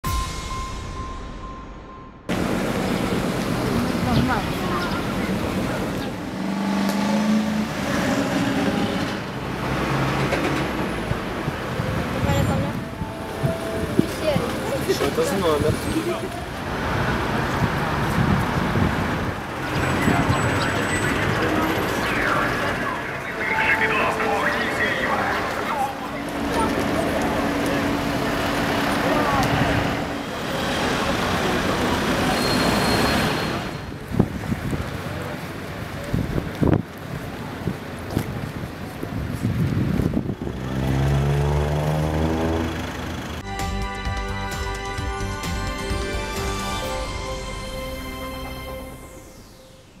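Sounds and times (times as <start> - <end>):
engine hum: 2.2 - 33.4, 36.7 - 43.5
passing cars: 2.3 - 43.4.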